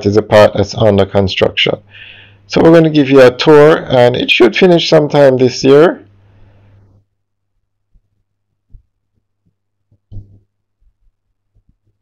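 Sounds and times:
soft low thumps: 7.9 - 12.0.

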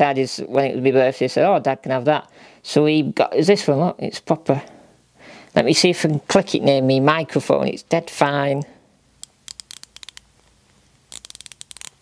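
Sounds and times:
ratchet clicking: 9.2 - 10.2, 11.1 - 12.0.

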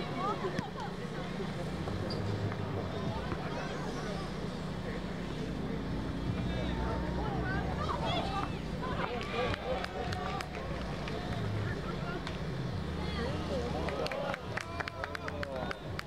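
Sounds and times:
players' voices: 0.0 - 16.0.

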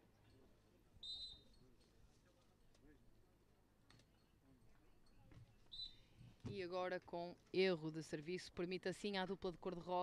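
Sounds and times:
referee's whistle blown: 1.0 - 1.6, 5.7 - 6.0.

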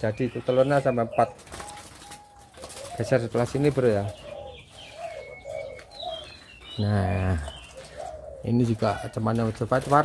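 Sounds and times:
doves cooing: 0.0 - 10.0.

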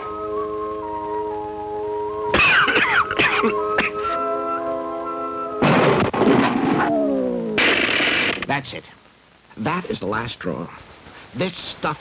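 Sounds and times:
falling musical slide: 0.0 - 8.5
held music chord: 0.0 - 8.5
man coughing hard: 2.3 - 4.2
crumbling crash effects: 5.6 - 8.6.

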